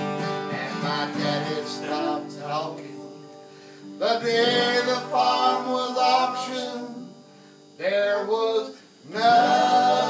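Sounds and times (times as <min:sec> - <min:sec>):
acoustic country band music: 0:00.0 - 0:10.0.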